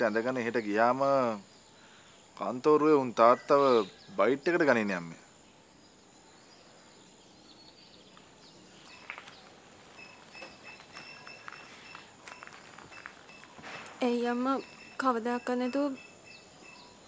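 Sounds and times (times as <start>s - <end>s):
bird chirps: 0.0s - 17.0s.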